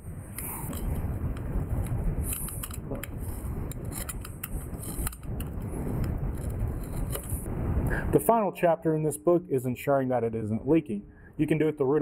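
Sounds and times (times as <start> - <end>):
steady low rumble: 0.0 - 12.0.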